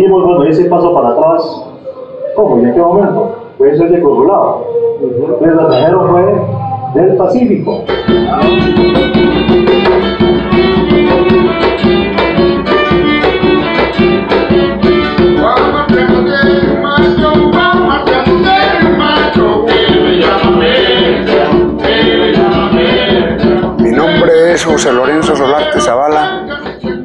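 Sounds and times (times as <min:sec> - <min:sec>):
plucked strings and percussion: 0:05.7 - 0:27.0
man singing: 0:07.8 - 0:09.3, 0:15.0 - 0:27.0
violin playing: 0:10.2 - 0:14.8.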